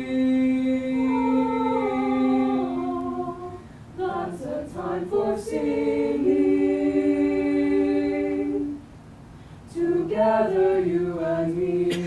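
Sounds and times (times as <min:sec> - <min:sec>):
choir singing a cappella: 0:00.0 - 0:08.9, 0:09.7 - 0:12.0.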